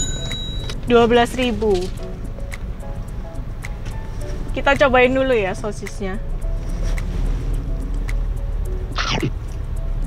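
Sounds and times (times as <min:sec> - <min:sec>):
car engine idling: 0:00.0 - 0:10.0
light background music: 0:00.0 - 0:10.0.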